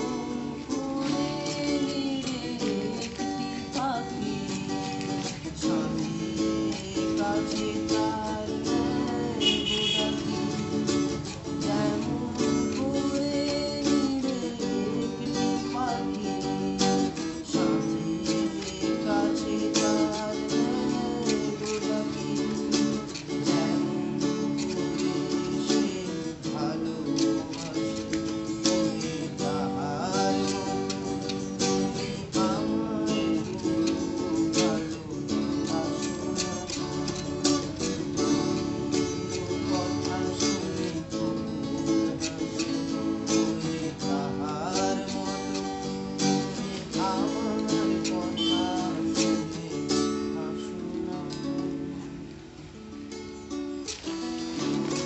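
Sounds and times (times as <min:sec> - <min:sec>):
man singing: 0:00.0 - 0:52.3, 0:53.8 - 0:55.0
guitars strumming chords: 0:00.0 - 0:55.0.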